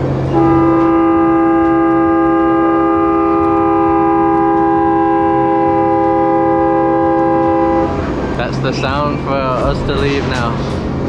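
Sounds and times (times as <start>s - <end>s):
riverboat horn blast: 0.2s - 8.3s.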